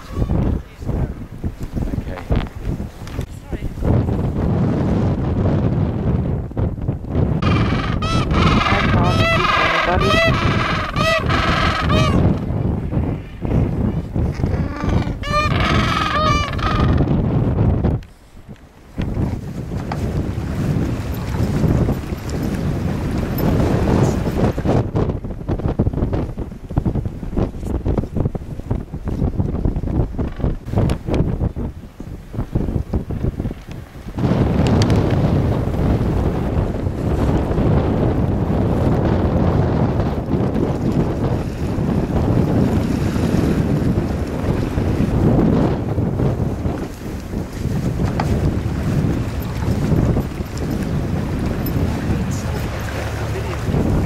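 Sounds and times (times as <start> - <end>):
wind buffeting microphone: 0.0 - 54.0
penguins honking: 7.4 - 12.3, 14.6 - 17.0.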